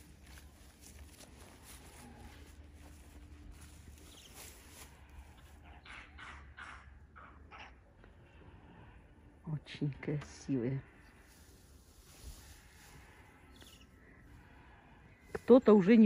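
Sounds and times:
rustles in dry grass: 0.0s - 5.8s, 10.9s - 15.6s.

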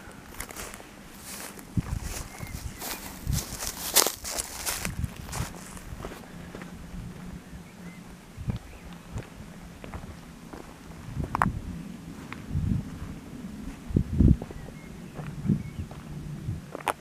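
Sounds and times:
footsteps on grass and dirt: 0.0s - 7.5s, 8.4s - 17.0s.

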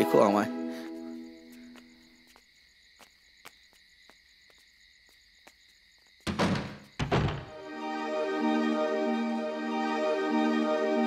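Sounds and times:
music: 0.0s - 1.8s, 6.3s - 11.0s
night insects chirring: 0.0s - 11.0s
heavy thuds: 6.3s - 7.6s.

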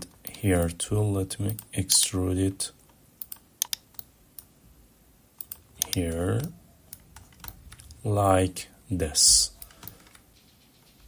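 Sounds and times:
computer mouse and keyboard clicks: 3.2s - 4.1s, 5.4s - 8.0s, 9.5s - 10.3s.

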